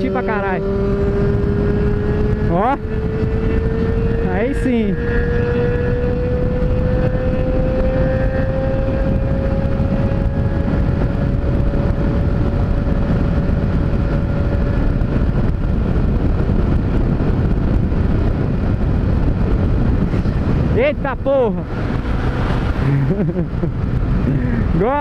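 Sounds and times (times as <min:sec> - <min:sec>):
motorcycle engine running: 0:00.0 - 0:25.0
wind and road noise: 0:00.0 - 0:25.0.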